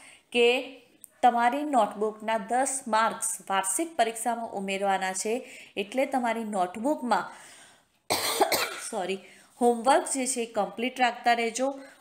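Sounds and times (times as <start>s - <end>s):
woman coughing: 8.1s - 9.0s.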